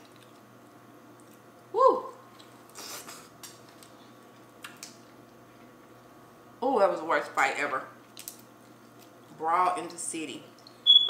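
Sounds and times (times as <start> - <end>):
crab shells cracking: 3.4 - 5.1, 8.1 - 9.2.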